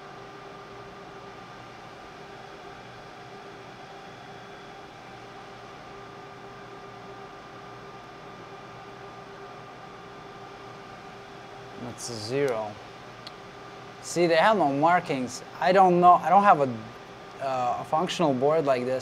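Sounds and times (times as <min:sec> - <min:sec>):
faint hum: 0:00.0 - 0:19.0
fan-like hiss: 0:00.0 - 0:19.0.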